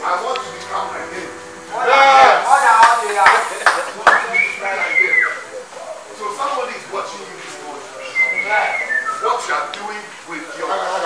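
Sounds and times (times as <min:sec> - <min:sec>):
voices: 0:00.0 - 0:11.0
high whistle sliding down: 0:00.6 - 0:05.6.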